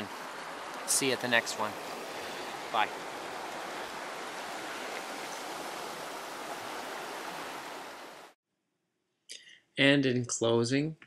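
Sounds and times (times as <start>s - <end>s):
stream rushing over stones: 0.0s - 8.4s.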